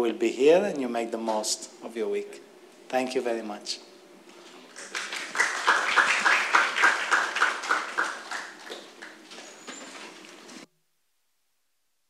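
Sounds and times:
audience applauding: 4.7 - 9.3.

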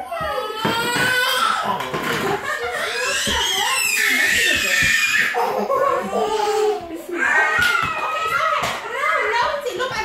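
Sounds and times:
children vocalizing: 0.0 - 9.8.

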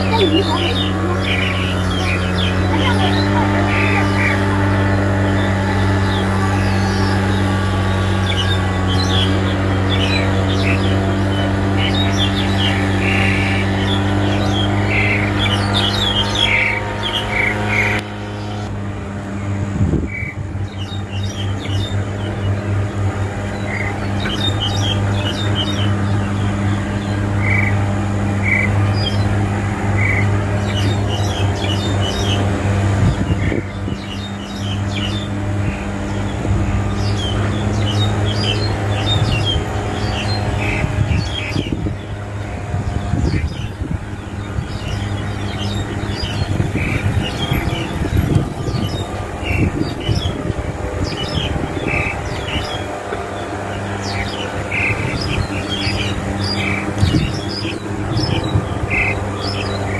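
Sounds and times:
low mechanical hum: 0.0 - 59.9
starling chirping and squawking: 0.0 - 59.9.

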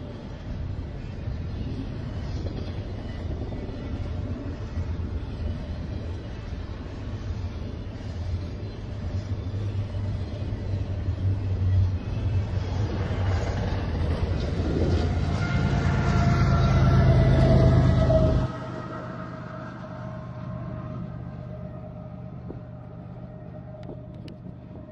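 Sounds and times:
diesel locomotive engine whine: 0.0 - 24.9
train wheels rumbling on rail: 0.0 - 24.9.

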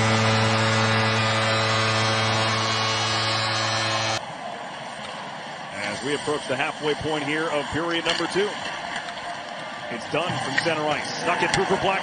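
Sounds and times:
arena goal horn blast: 0.0 - 4.2
crowd cheering: 0.0 - 12.0.

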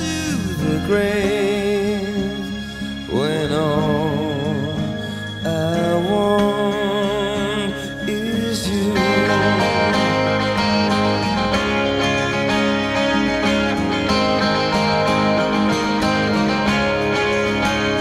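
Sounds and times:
instrumental song music: 0.0 - 18.0.

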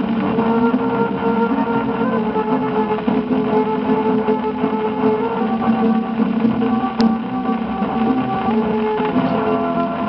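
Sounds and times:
record surface hiss: 0.0 - 10.0
string ensemble on old record: 0.0 - 10.0.

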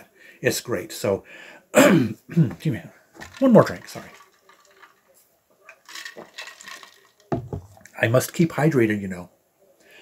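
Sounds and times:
water moving in plastic bottle: 3.2 - 7.9.

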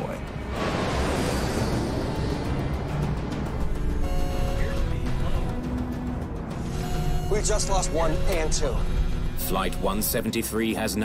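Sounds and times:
background music with held notes: 2.4 - 11.0.

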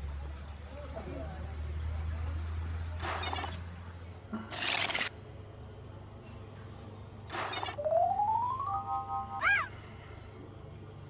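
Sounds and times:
synthesized tone: 7.3 - 9.8.

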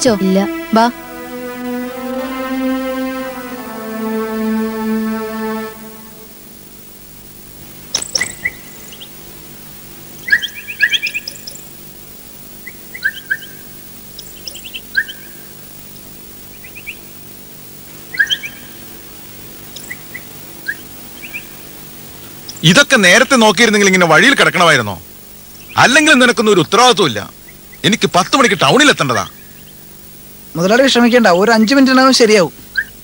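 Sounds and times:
string music: 0.0 - 6.8
faint steady hum: 0.0 - 33.0
birds chirping: 7.9 - 17.2, 17.9 - 22.7, 25.4 - 30.0.

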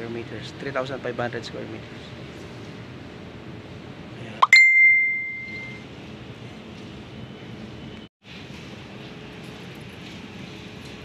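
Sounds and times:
bell-like ding: 4.4 - 5.8.

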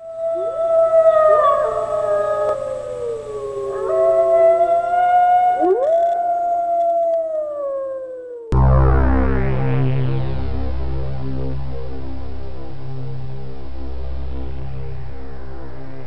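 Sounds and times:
wolves howling: 0.0 - 8.6.

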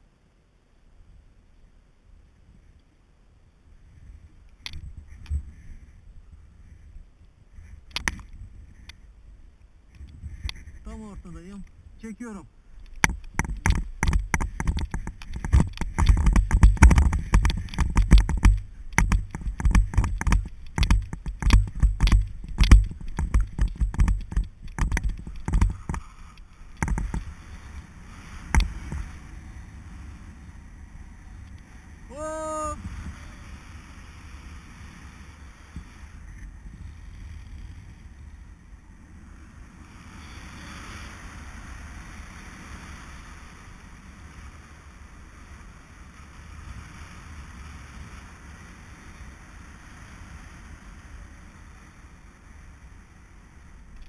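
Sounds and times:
wind buffeting camera: 3.6 - 54.0
thumps on camera: 13.0 - 26.0.

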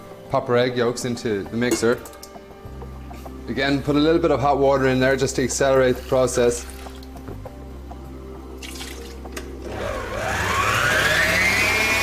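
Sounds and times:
stand mixer motor whine: 9.6 - 12.0.

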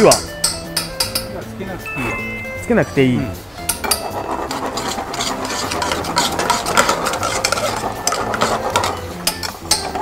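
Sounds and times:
utensil scraping metal pan: 3.8 - 10.0.

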